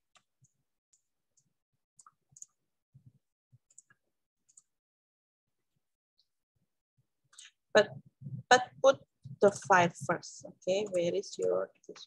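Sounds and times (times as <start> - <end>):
computer mouse clicking: 0.1 - 2.6, 3.7 - 4.7.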